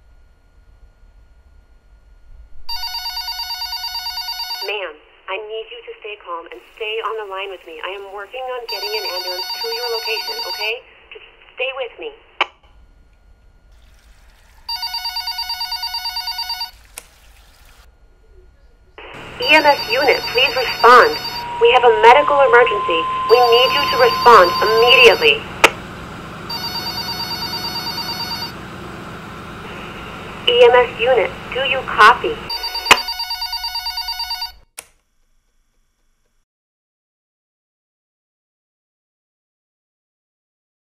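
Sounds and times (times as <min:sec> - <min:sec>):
electronic telephone ringing: 0:02.7 - 0:04.8, 0:08.7 - 0:10.8, 0:14.7 - 0:16.8, 0:19.1 - 0:25.6, 0:26.4 - 0:28.6, 0:30.5 - 0:34.7.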